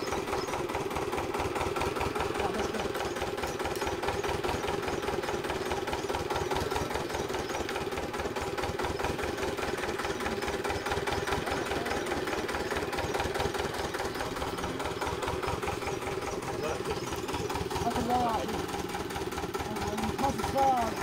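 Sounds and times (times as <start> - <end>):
flywheel engine knocking: 0.0 - 21.0.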